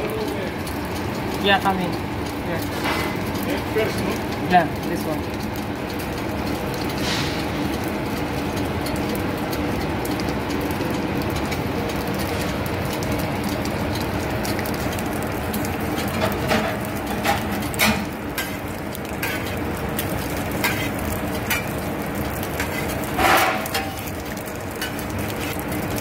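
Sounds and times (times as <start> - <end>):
food sizzling on a griddle: 0.0 - 26.0.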